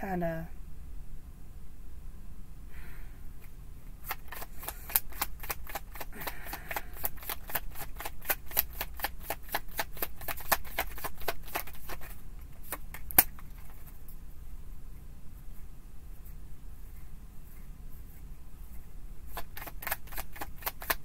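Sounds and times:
cards being shuffled: 3.9s - 14.1s, 19.3s - 21.0s
sharp card snap: 12.6s - 13.4s.

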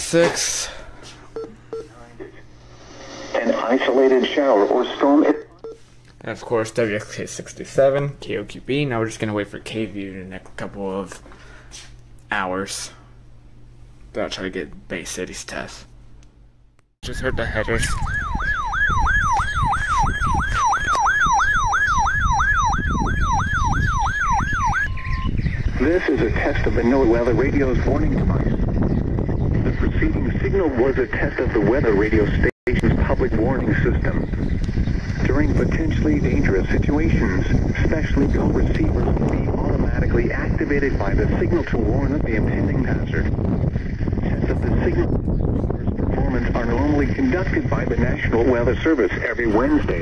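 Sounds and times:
siren-like alert tone sweeping: 17.7s - 25.5s.

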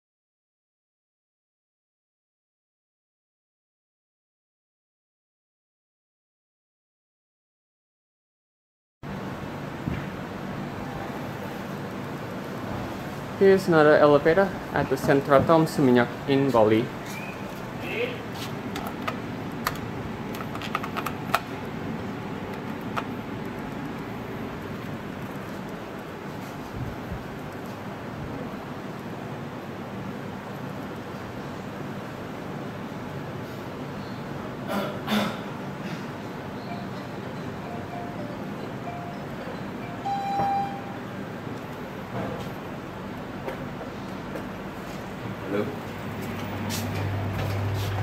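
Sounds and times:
steady background noise: 9.1s - 48.0s
sharp clicks and ticks: 18.7s - 21.8s, 22.4s - 26.2s
elevator running rumble: 35.7s - 48.0s
elevator arrival chime: 36.6s - 41.4s.

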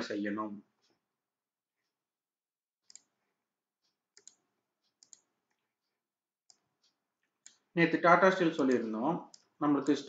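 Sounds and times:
computer mouse clicks: 2.8s - 3.2s, 3.8s - 5.7s.

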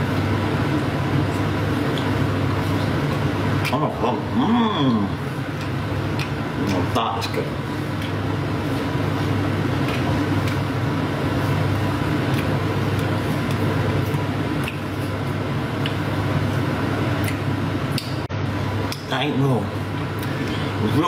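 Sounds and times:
extractor fan humming: 0.0s - 21.0s.

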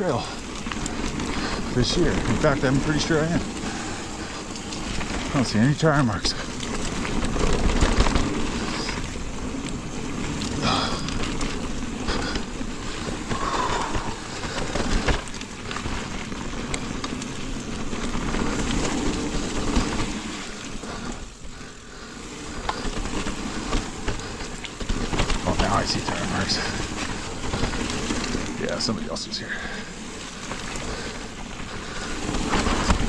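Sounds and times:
bike clicks and rattles: 0.0s - 33.0s
bike tyre and wind noise: 0.0s - 33.0s.

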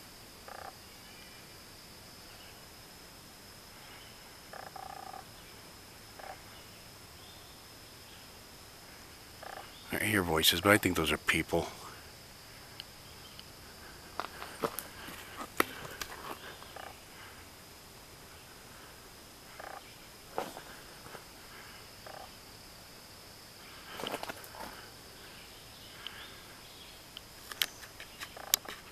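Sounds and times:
high-pitched insect drone: 0.0s - 28.9s
footsteps on dirt trail: 13.8s - 16.8s, 20.3s - 21.3s, 23.9s - 24.8s.

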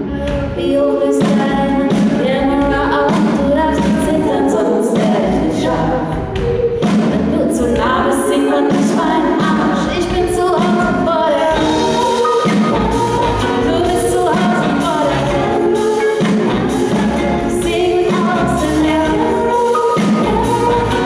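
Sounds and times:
female vocal group singing in harmony: 0.2s - 21.0s.

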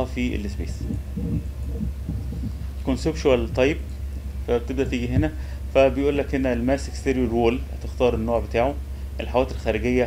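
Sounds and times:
faint uneven low rumble: 0.0s - 10.0s
steady low hum: 0.0s - 10.0s.

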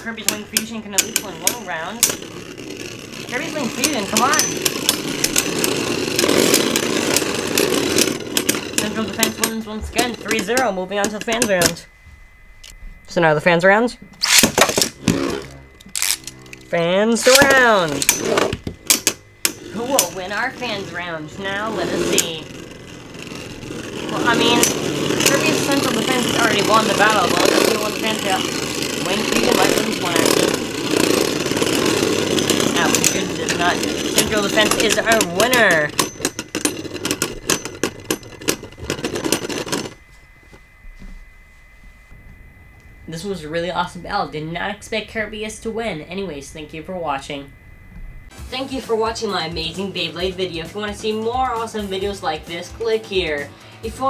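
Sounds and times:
spinning top humming: 0.0s - 54.0s
spinning top launch whirring rip: 1.1s - 9.6s, 14.2s - 40.0s.

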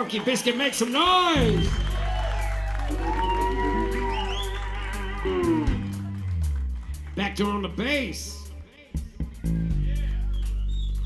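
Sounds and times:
electric bass guitar notes: 1.3s - 11.0s.

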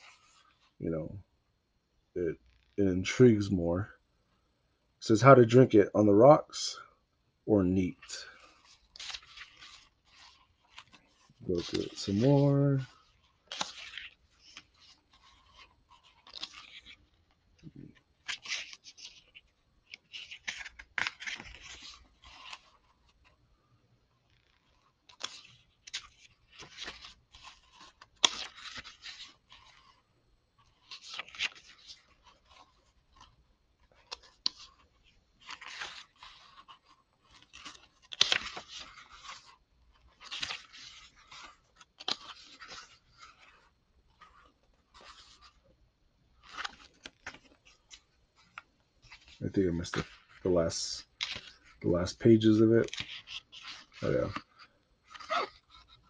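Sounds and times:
paper pages turning: 0.0s - 0.8s, 7.8s - 23.4s, 24.1s - 45.6s, 46.4s - 56.0s.

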